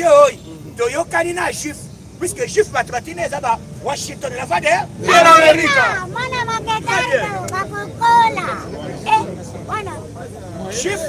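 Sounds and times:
man declaiming loudly: 0.0s - 7.4s
crowd chatter: 0.0s - 11.0s.

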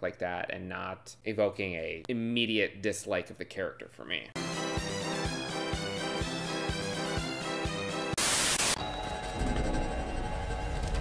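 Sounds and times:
static white noise burst: 8.2s - 8.8s
low dark background music: 8.8s - 11.0s.

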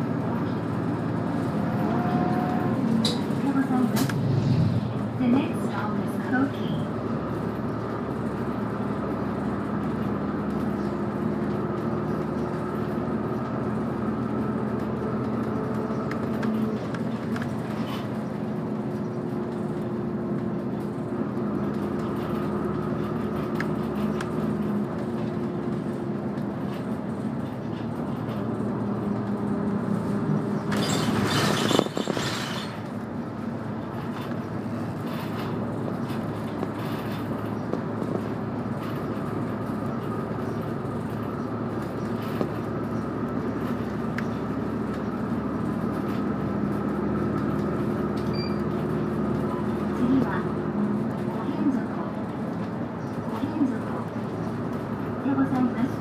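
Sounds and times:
bus engine humming: 0.0s - 56.0s
road noise: 0.0s - 56.0s.

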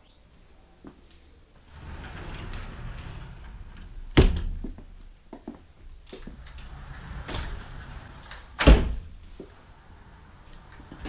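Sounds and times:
door thudding shut: 1.8s - 4.8s, 6.7s - 9.2s.

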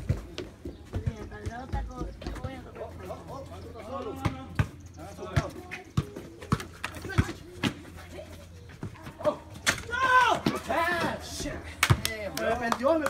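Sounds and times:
voices talking in background: 0.0s - 13.0s.

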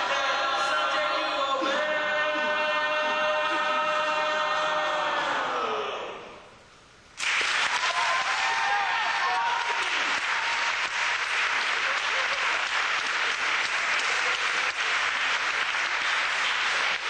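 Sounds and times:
audience applauding: 7.2s - 17.0s.

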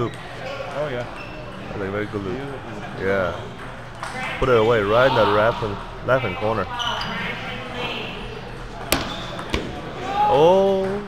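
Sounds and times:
murmur of busy hall: 0.0s - 11.0s.

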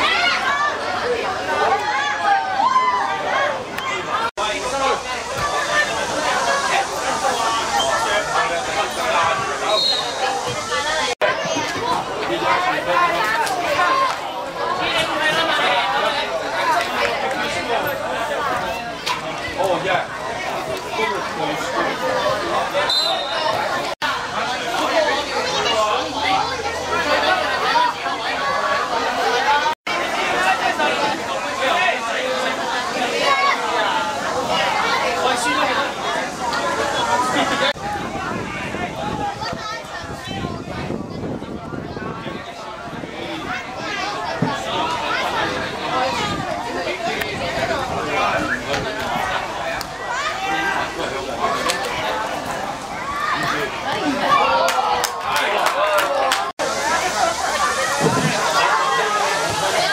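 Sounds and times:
people talking and calling out: 0.0s - 59.9s.

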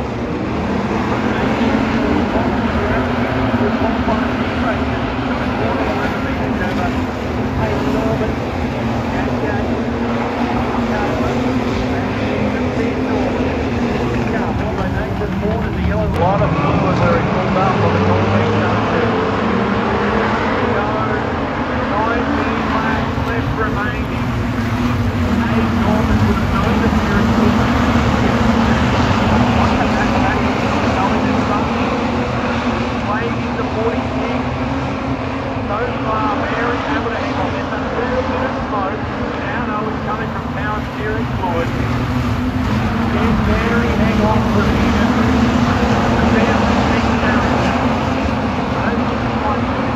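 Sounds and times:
engine note rising: 0.0s - 49.9s
many race car engines: 0.0s - 49.9s.

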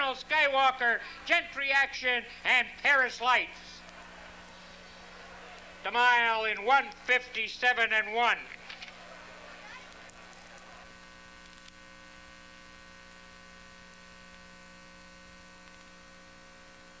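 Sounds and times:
steady electrical hum: 0.0s - 17.0s.

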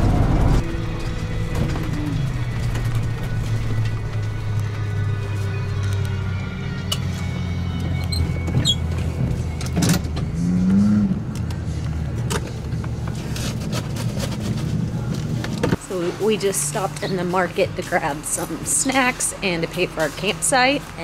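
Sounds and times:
motorhome engine humming: 0.0s - 21.0s.

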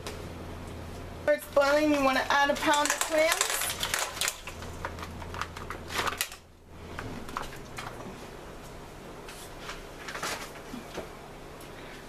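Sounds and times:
clam shells clattering in pot: 2.5s - 6.3s.

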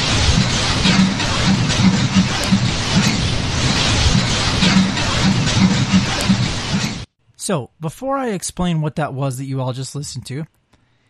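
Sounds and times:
low rumble: 0.0s - 7.1s.

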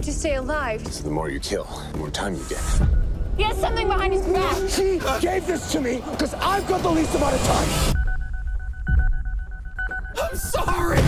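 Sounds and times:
rapid electronic beeping: 5.2s - 11.0s.

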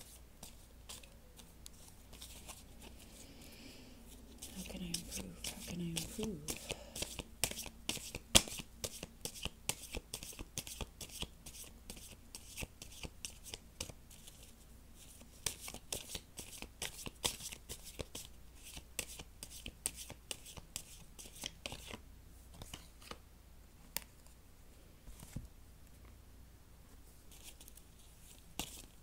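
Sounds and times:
cards being shuffled: 0.0s - 3.0s, 4.3s - 14.5s, 15.4s - 22.0s, 27.3s - 29.0s.

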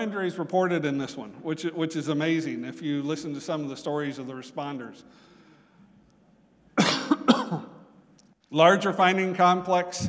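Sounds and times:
man coughing: 6.8s - 7.9s.

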